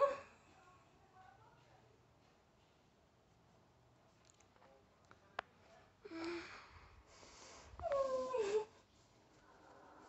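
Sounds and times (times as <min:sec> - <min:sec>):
faint breathing: 0:06.0 - 0:10.0
woman whimpering cry: 0:07.8 - 0:08.8.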